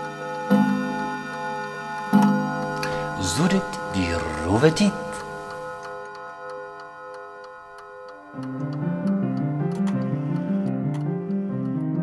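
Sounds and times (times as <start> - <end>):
sustained musical drone: 0.0 - 12.0
clock ticking: 2.2 - 11.9.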